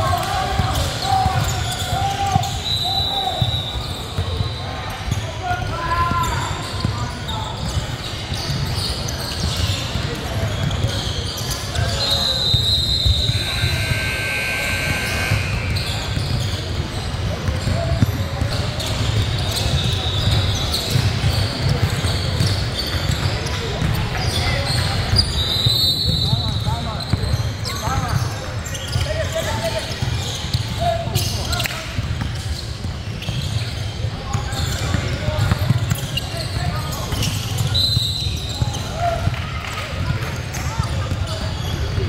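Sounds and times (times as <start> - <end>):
indistinct chatter: 0.0 - 42.0
gym hum: 12.4 - 17.6.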